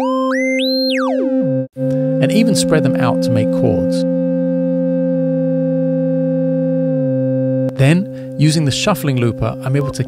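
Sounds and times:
sustained synth chord: 0.0s - 10.0s.

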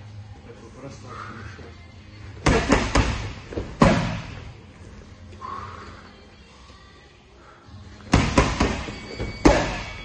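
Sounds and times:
boxing gloves hitting focus mitts: 2.4s - 4.4s, 8.1s - 10.0s.

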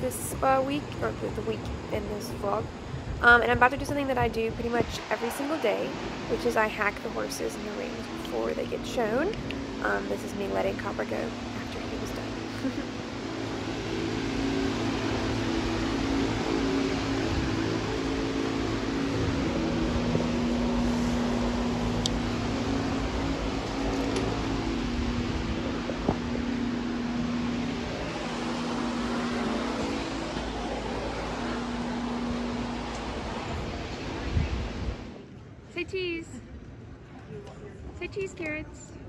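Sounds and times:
low drone: 0.0s - 35.7s
ventilation hum: 0.0s - 39.0s.

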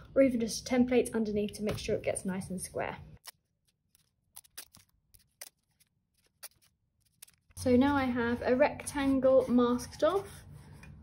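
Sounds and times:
masking tape tearing and crackling: 3.2s - 7.6s.

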